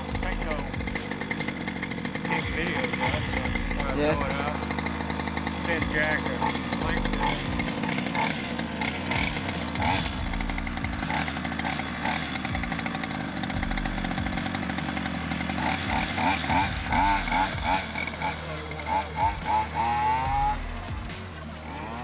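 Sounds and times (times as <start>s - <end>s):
small two-stroke engine revving: 0.0s - 22.0s.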